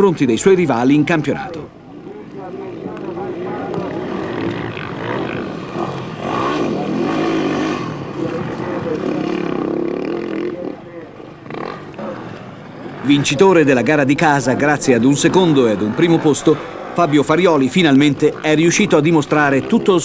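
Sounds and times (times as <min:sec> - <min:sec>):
motorcycle engine revving: 0:02.0 - 0:20.0.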